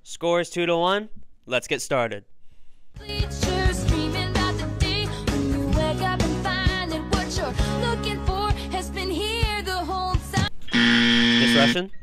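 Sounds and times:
recorded song: 2.8s - 10.7s
game show buzzer: 10.7s - 11.8s.

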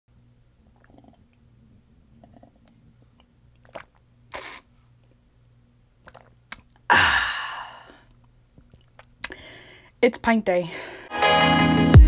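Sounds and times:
gulping and swallowing: 0.6s - 4.7s, 6.0s - 6.9s, 7.8s - 9.4s
loud exhale: 6.9s - 8.0s.

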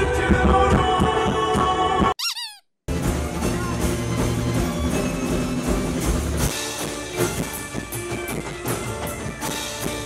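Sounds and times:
live band music: 0.0s - 10.0s
high chirping squeak: 2.2s - 2.7s.

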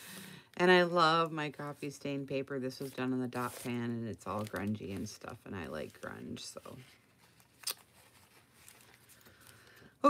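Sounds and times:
paper pages handled: 2.7s - 9.8s.

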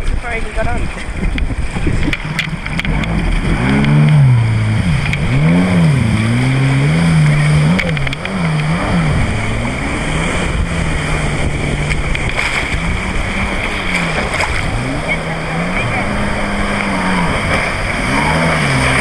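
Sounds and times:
jet ski engine revving: 0.4s - 19.0s.

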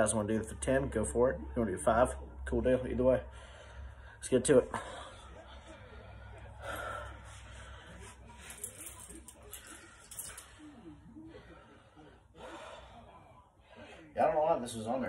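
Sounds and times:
man breathing: 3.2s - 14.2s.

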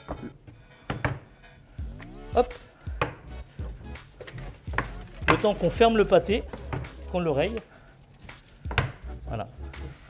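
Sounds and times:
rolling pin knocks: 4.2s - 5.6s, 8.7s - 9.0s.

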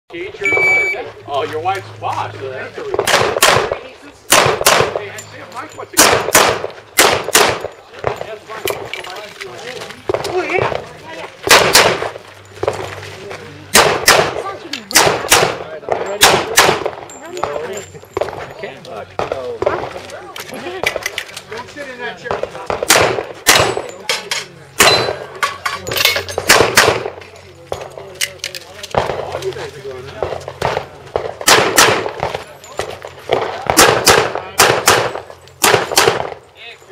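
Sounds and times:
handgun shot with echo: 6.0s - 8.2s, 13.7s - 15.6s, 22.7s - 23.8s, 26.5s - 27.2s, 30.6s - 32.3s, 33.3s - 36.4s.

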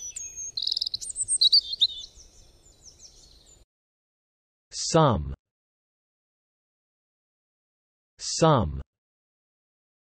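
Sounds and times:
birdsong chirps and trills: 0.0s - 3.6s.

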